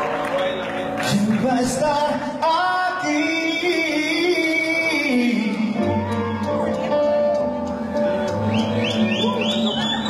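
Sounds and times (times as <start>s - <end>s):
salsa band music: 3.1s - 10.0s.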